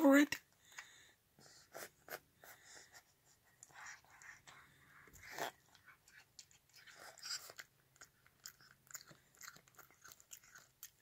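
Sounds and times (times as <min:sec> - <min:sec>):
cat chewing and smacking: 0:03.5 - 0:11.0.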